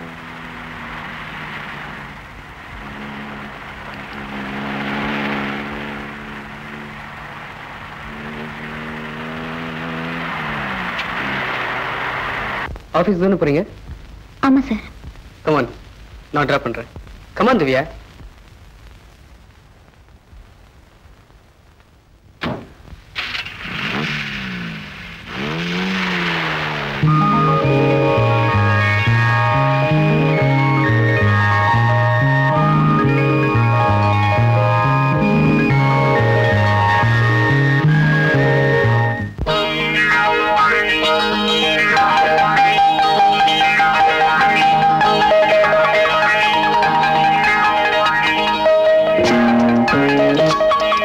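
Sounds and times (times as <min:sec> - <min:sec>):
small car engine running: 0:00.0 - 0:12.7, 0:23.2 - 0:51.0.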